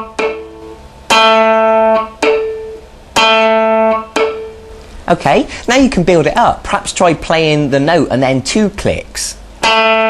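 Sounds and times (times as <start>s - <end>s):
ringing electric guitar note: 0.0s - 4.8s, 9.6s - 10.0s.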